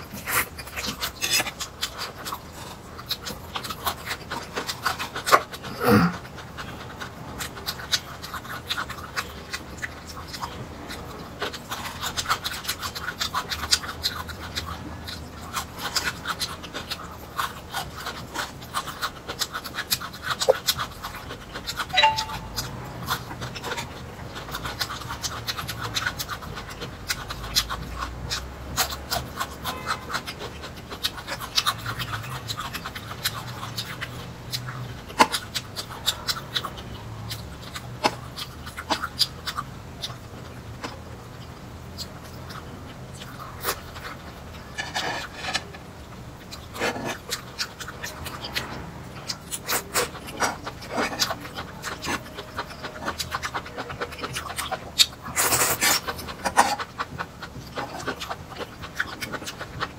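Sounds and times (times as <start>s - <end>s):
chewing crunchy vegetables: 0.0s - 59.9s.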